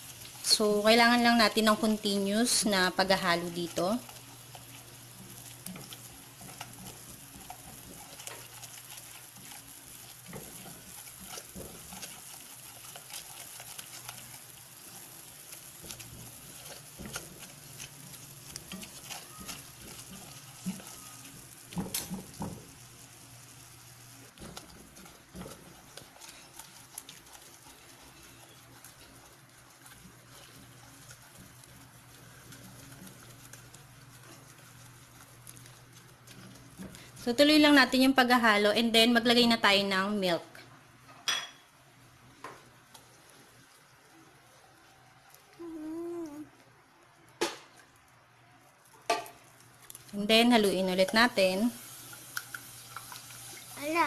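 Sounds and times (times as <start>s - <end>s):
roux sizzling in a saucepan: 0.0s - 46.6s, 47.4s - 54.0s
spatula scraping and tapping pan: 1.6s - 22.8s, 24.3s - 37.2s, 52.0s - 53.7s.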